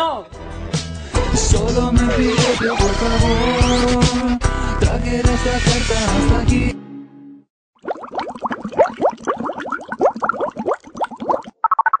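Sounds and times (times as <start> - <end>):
bubbly rising blips: 7.8 - 12.0.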